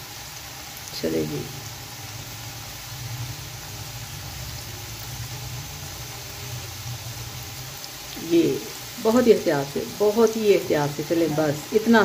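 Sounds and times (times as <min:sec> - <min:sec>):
oil sizzling while deep-frying: 0:00.0 - 0:12.0.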